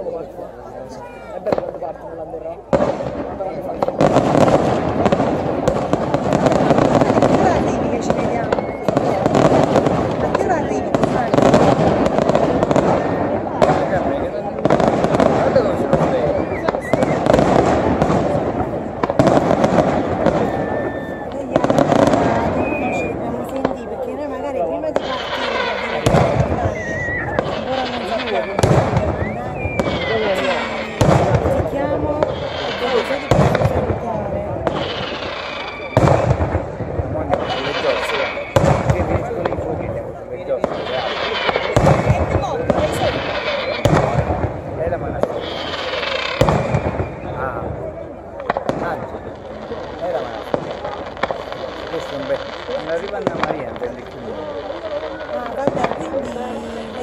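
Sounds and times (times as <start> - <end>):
fireworks bursting: 0.0 - 57.0
voices talking: 0.0 - 57.0.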